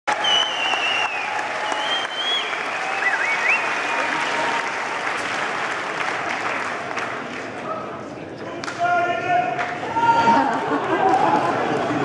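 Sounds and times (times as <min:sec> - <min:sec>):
audience applauding: 0:00.1 - 0:07.8, 0:09.6 - 0:12.0.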